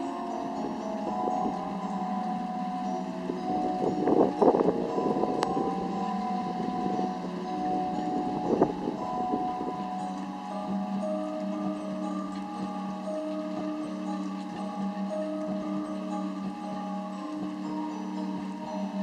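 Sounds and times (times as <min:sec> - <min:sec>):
eerie ambient droning music: 0:00.0 - 0:19.0.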